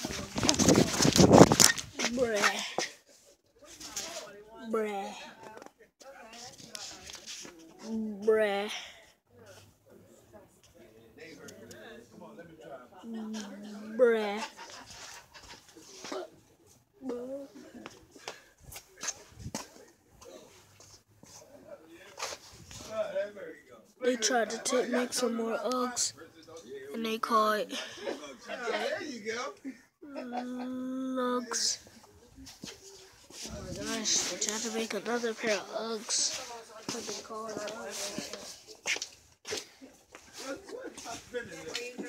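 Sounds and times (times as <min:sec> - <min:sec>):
person speaking indistinctly: 0:00.0 - 0:02.9, 0:04.6 - 0:05.4, 0:30.0 - 0:32.0, 0:33.4 - 0:38.5
footsteps on concrete: 0:00.0 - 0:03.0, 0:36.3 - 0:42.0.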